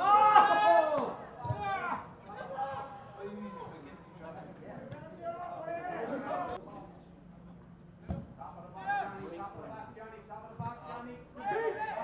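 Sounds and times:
football being kicked: 1.4 - 1.7.

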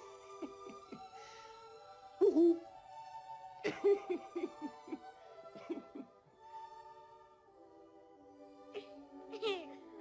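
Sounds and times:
soft orchestral music: 0.0 - 10.0.

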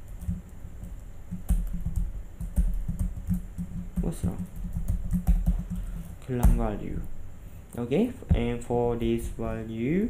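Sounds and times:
typing on computer keyboard: 0.0 - 6.6.

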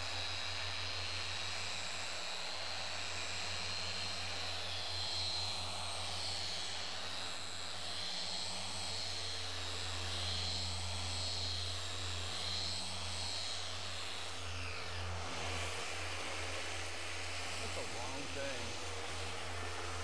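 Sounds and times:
polisher motor whining: 0.0 - 20.0.

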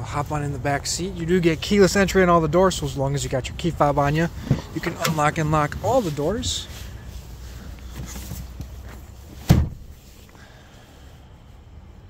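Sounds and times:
car door shutting thud: 9.4 - 9.9.

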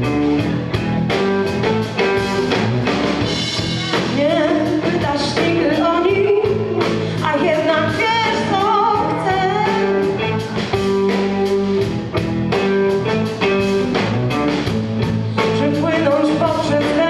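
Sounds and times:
drum kit beat: 0.0 - 17.0
electric bass: 0.0 - 17.0
electric guitars: 0.0 - 17.0
woman singing: 4.0 - 10.5, 15.4 - 17.0.

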